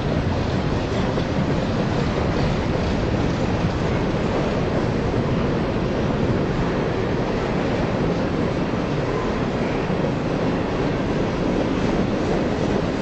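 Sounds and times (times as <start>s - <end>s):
freight train wheels rumbling on rail: 0.0s - 13.0s.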